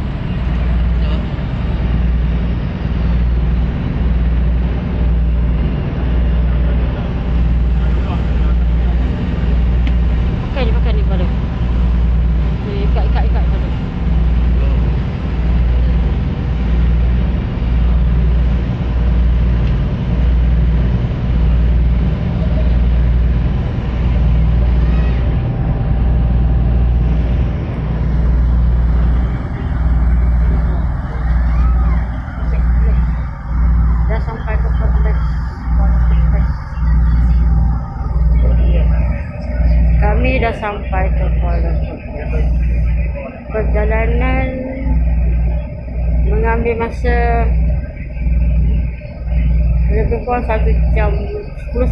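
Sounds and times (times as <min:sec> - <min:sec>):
ferry engines droning: 0:00.0 - 0:51.9.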